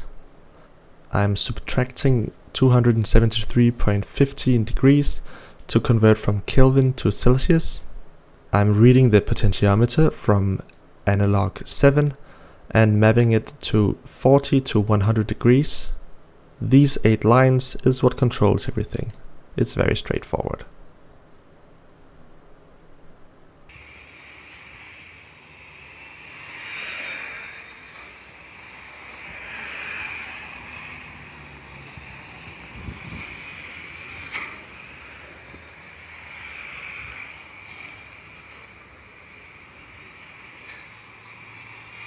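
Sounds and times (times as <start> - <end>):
electric motor whine: 23.7 - 42.0
tyre noise of passing cars: 25.0 - 38.4.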